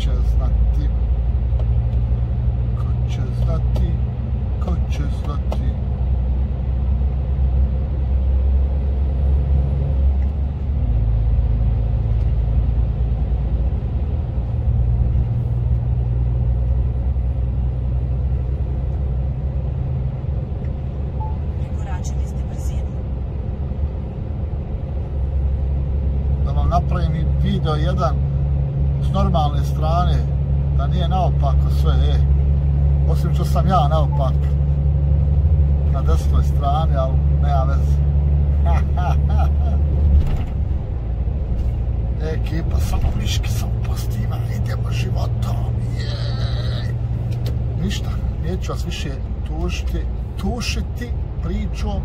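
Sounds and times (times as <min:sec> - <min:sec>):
truck engine and road drone: 0:00.0 - 0:52.0.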